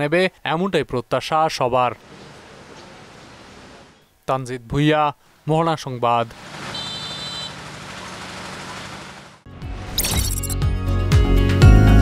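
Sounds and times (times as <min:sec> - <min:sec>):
street noise hiss: 0:00.3 - 0:09.4.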